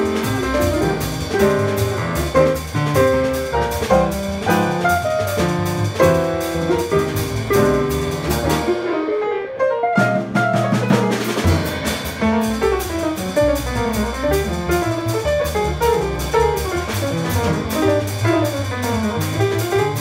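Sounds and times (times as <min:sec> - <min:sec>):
upright bass: 0:00.0 - 0:08.7, 0:11.3 - 0:20.0
drum kit cymbal pattern: 0:10.8 - 0:20.0.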